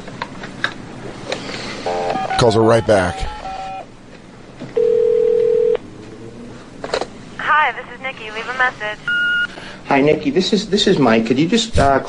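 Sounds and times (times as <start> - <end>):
steady telephone tone: 4.8 - 5.8, 9.0 - 9.5.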